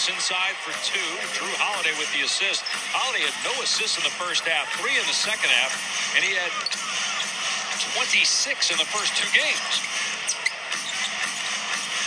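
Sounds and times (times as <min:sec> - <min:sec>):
arena crowd hubbub: 0:00.0 - 0:12.0
sneaker squeaks on hardwood: 0:09.6 - 0:11.5.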